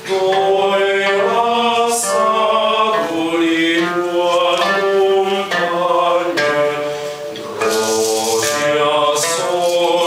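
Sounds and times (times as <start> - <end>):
choir singing: 0.0 - 10.0
shaker rattle: 7.5 - 10.0.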